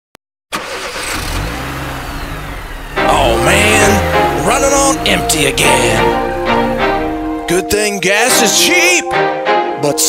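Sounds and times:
car engine running: 0.6s - 7.8s
music: 2.6s - 10.0s.

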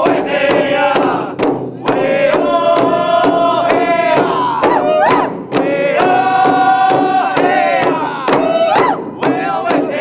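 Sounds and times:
steady drum beat: 0.0s - 10.0s
voices chanting: 0.0s - 10.0s.

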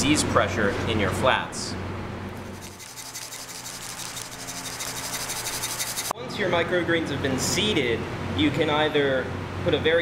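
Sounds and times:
seeds rattling in plastic shaker: 2.5s - 6.1s.

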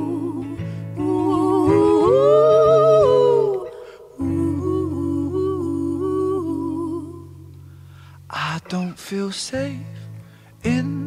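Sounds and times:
man and woman singing harmonies: 0.0s - 7.5s, 10.6s - 11.0s.

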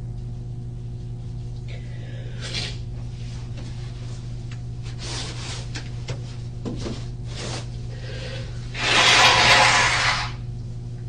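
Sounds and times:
low electrical hum: 0.0s - 11.0s
person blowing nose into tissue: 2.3s - 2.8s, 8.0s - 10.4s.

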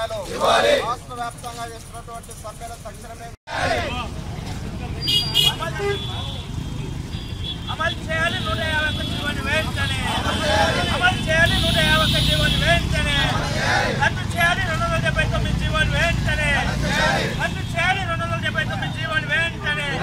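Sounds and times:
voices talking loudly: 0.0s - 7.0s, 7.7s - 20.0s
road traffic rumble: 0.0s - 20.0s.

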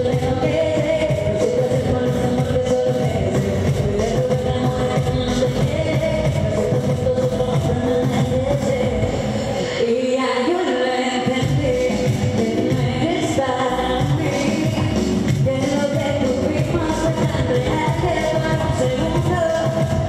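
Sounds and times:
amplified backing music with beat: 0.0s - 10.0s, 11.1s - 20.0s
woman singing into a microphone: 0.0s - 20.0s.

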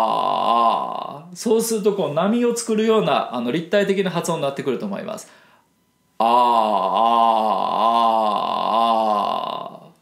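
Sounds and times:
man singing ah vowel: 0.0s - 2.2s, 6.2s - 10.0s.

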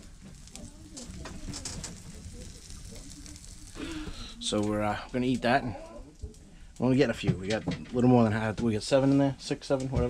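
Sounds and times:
food sizzling in skillet: 0.0s - 6.2s.

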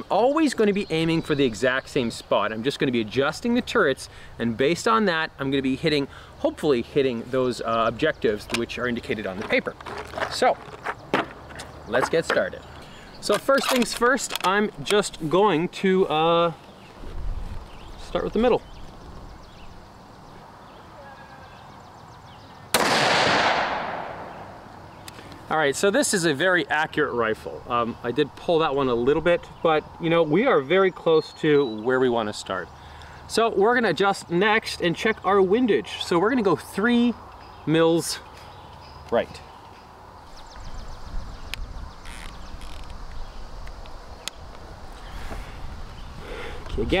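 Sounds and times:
rifle shot with echo: 22.7s - 24.6s.

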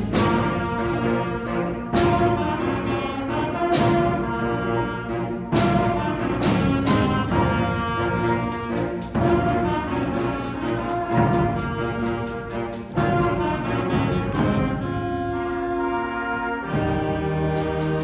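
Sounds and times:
concert band playing: 0.0s - 18.0s
high percussion beat: 7.0s - 14.8s.

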